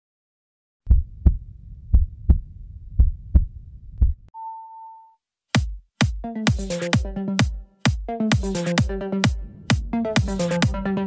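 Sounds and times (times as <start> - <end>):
heartbeat double thumps: 0.9 - 4.3, 5.6 - 11.0
low rumble: 0.9 - 4.3, 9.3 - 11.0.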